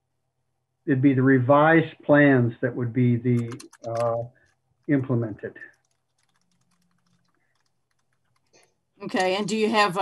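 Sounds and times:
computer keyboard typing clicks: 3.4s - 9.6s.

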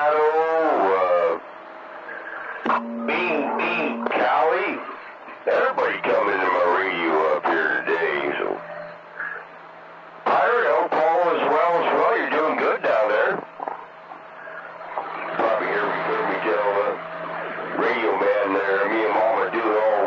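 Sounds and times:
voices over radio: 0.0s - 9.6s, 10.2s - 20.0s
steady low hum: 0.0s - 20.0s.

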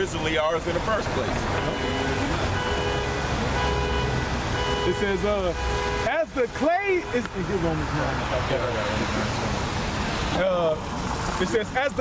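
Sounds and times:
road traffic rumbling: 0.0s - 12.0s.

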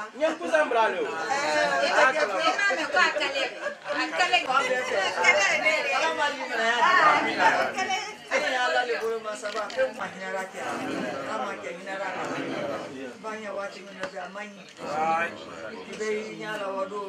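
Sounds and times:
overlapping chatter: 0.0s - 17.0s.

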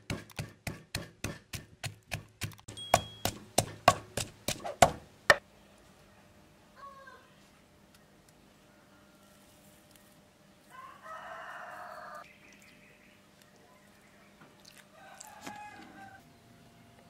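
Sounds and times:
rooster crowing: 10.7s - 12.3s, 14.9s - 16.2s.

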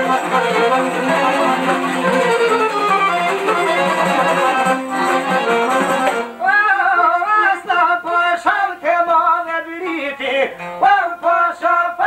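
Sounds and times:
plucked long-necked lutes: 0.0s - 6.4s.

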